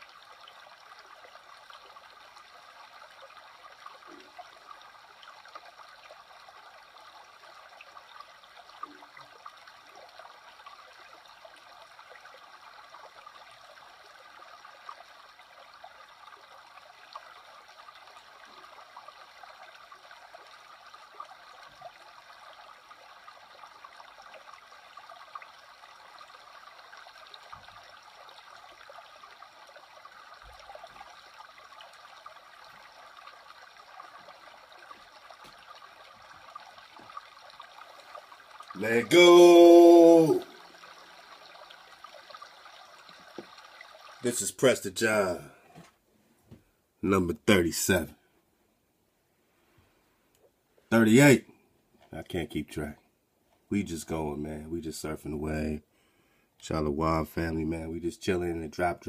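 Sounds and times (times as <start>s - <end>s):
small water splashes: 0.0s - 45.6s
creek flowing over rocks: 0.0s - 46.0s, 50.8s - 51.4s.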